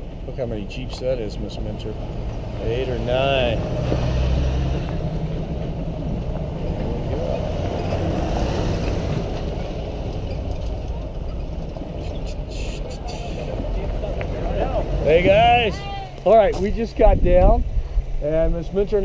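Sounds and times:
engines running slowly: 0:00.0 - 0:17.1
faint voices: 0:11.8 - 0:16.6.

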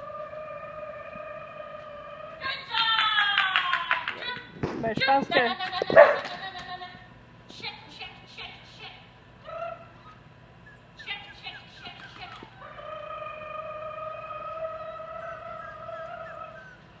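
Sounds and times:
dog yipping: 0:05.9 - 0:06.3, 0:09.7 - 0:12.6, 0:14.9 - 0:16.8
dog whining: 0:09.5 - 0:17.0.

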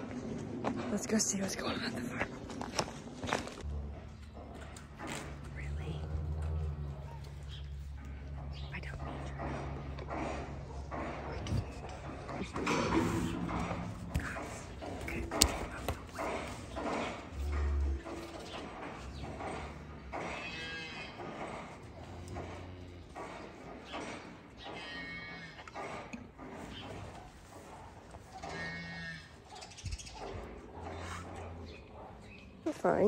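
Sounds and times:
cattle mooing: 0:19.4 - 0:23.2.

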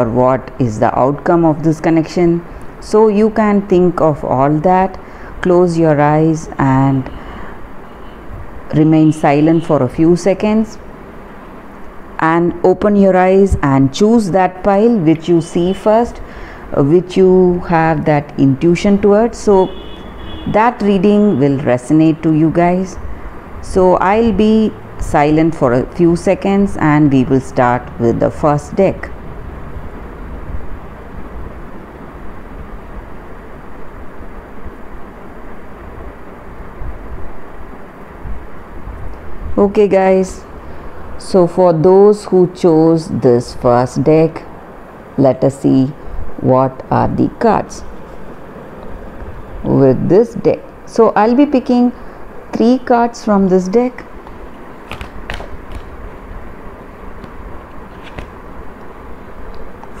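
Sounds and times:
cards clicking and rustling: 0:54.2 - 0:56.3, 0:57.1 - 0:58.5.

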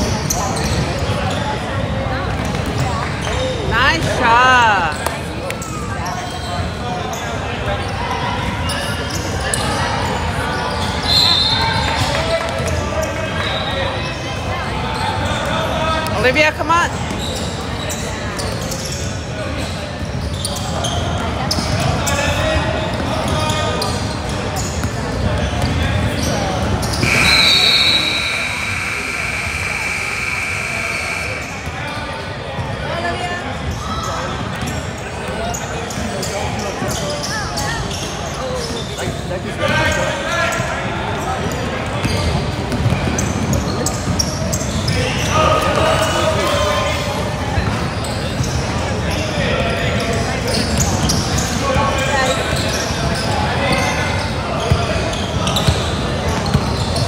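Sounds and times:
spectators' voices echoing: 0:00.0 - 0:57.0
basketball bouncing: 0:42.7 - 0:43.2.

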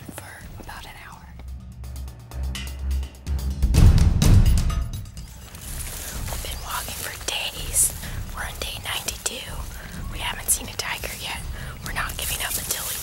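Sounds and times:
woman whispering: 0:00.0 - 0:01.4, 0:06.2 - 0:13.0.

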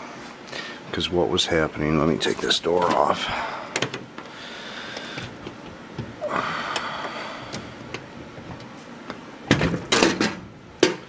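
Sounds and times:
loud metal clunks: 0:09.5 - 0:11.0.

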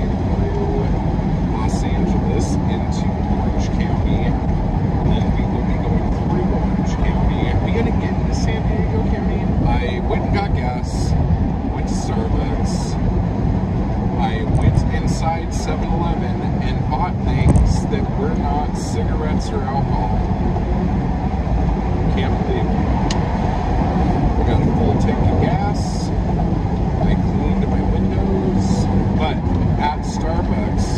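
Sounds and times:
man talking: 0:00.0 - 0:04.4, 0:05.0 - 0:13.0, 0:14.1 - 0:20.3, 0:22.1 - 0:22.8, 0:24.3 - 0:26.2, 0:27.0 - 0:30.9
road and engine rumble in car: 0:00.0 - 0:30.9.

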